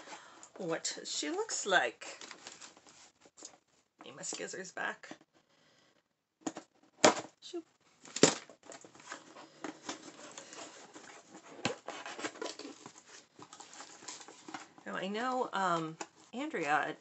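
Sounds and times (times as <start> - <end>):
wrapping crinkling and rustling: 1.4 - 3.8, 8.0 - 16.4.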